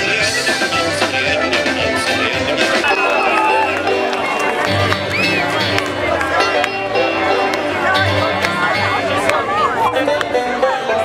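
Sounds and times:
loud live band music: 0.0s - 11.0s
people's voices: 0.0s - 11.0s.

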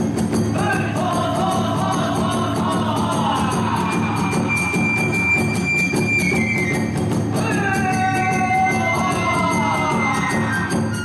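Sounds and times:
steady drum beat: 0.0s - 11.0s
bamboo flute: 3.6s - 11.0s.

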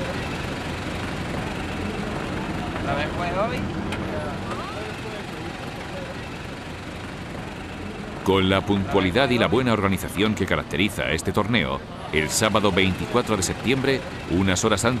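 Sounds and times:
engine running at low speed: 0.0s - 15.0s
faint voices talking: 0.0s - 15.0s.

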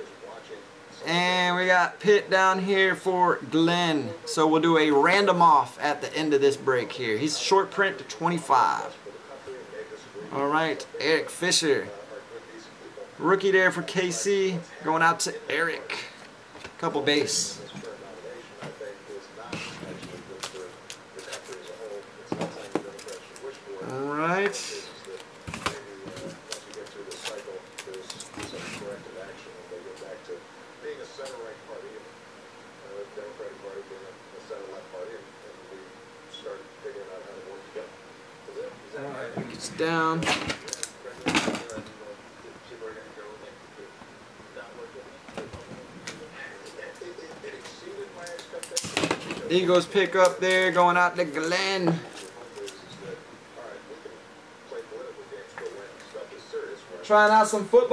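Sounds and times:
faint quiet talking: 40.5s - 49.6s, 51.5s - 57.1s.

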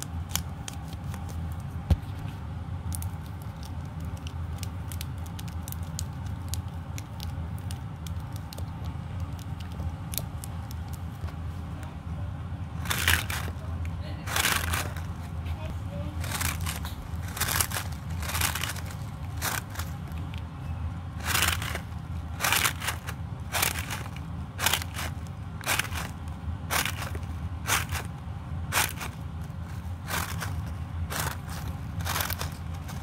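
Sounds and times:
stress ball crunching: 0.0s - 11.8s, 12.7s - 15.4s, 16.2s - 33.0s.

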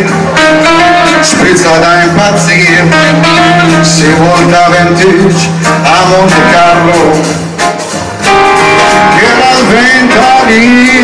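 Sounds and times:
double bass: 0.0s - 11.0s
drum kit: 0.0s - 11.0s
piano: 0.0s - 11.0s.

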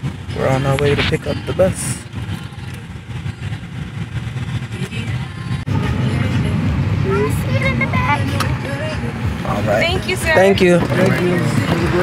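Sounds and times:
car cabin road rumble: 0.0s - 12.0s
people talking: 0.3s - 3.0s, 4.6s - 12.0s.

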